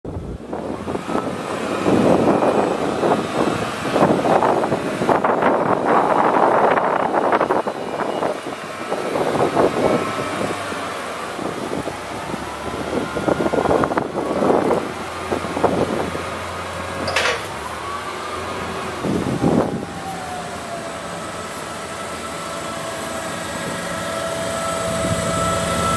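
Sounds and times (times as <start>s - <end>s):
forklift engine revving: 0.4s - 19.9s, 20.9s - 25.9s
high squeal: 6.2s - 10.3s.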